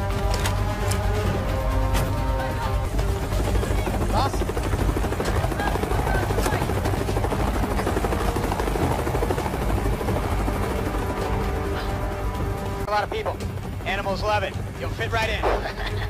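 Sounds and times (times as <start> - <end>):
helicopter rotor chop: 0.0 - 16.0.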